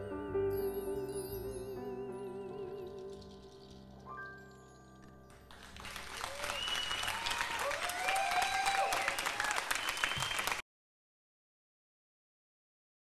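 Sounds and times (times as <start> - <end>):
audience applauding: 5.3 - 10.6
whoops from audience: 6.1 - 10.6.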